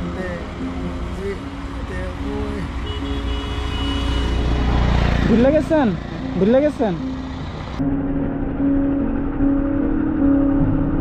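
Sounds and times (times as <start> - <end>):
road traffic rumble: 0.0 - 11.0
vehicle approaching: 3.4 - 11.0.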